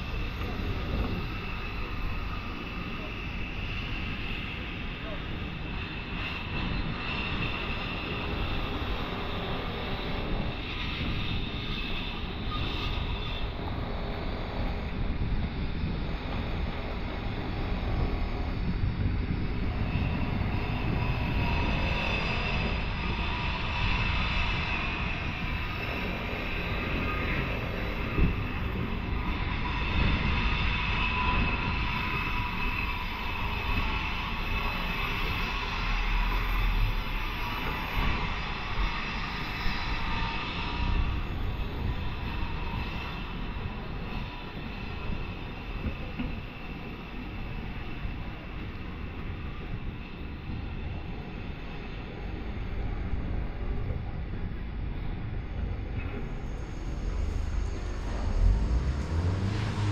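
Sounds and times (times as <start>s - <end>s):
faint drone: 0.0s - 59.9s
street low rumble: 0.0s - 59.9s.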